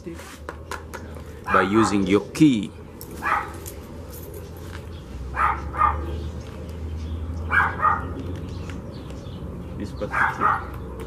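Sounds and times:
dog barking: 1.5s - 2.1s, 3.2s - 3.6s, 5.3s - 6.2s, 7.5s - 8.2s, 10.1s - 10.8s.

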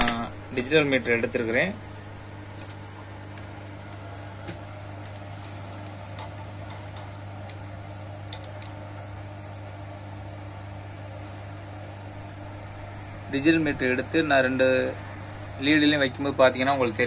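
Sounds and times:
low mains hum: 0.0s - 17.0s.

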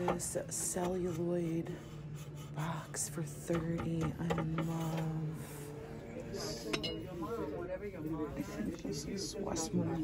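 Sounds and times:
indistinct background voices: 0.0s - 10.0s
glassware clink: 6.7s - 7.1s.

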